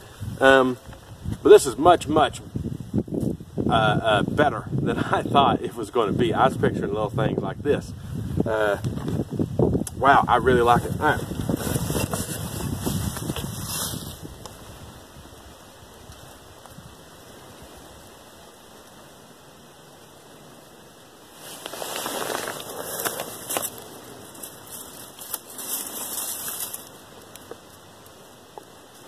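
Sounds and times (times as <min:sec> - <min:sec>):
plastic bag crinkling and rustling: 0:21.3 - 0:27.6.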